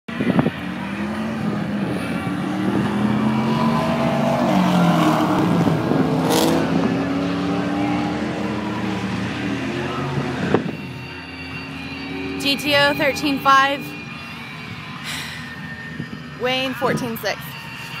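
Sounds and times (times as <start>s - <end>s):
car engines racing at full throttle: 0.1s - 18.0s.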